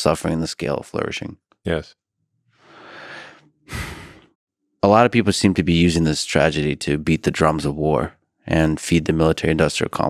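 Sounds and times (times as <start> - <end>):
man speaking: 0.0 - 1.9, 4.8 - 10.0
man breathing into microphone: 2.6 - 4.3.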